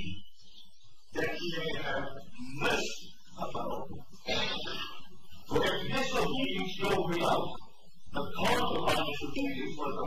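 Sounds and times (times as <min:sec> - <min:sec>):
man speaking muffled: 0:00.0 - 0:00.3, 0:01.0 - 0:10.0.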